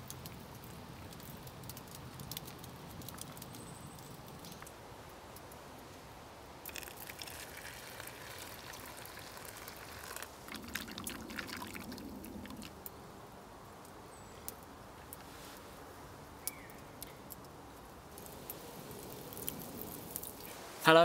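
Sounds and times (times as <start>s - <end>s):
liquid pouring into metal mug: 6.7s - 12.7s.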